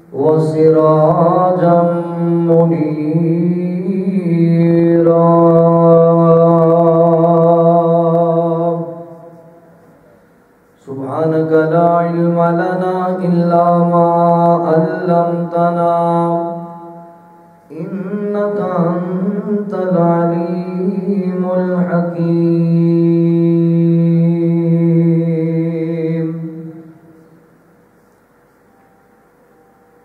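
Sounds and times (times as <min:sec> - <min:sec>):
man chanting: 0:00.0 - 0:09.8, 0:10.8 - 0:27.1.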